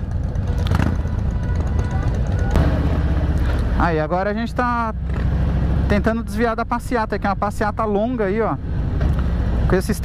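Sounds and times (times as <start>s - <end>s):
motorcycle engines rumbling: 0.0s - 10.0s.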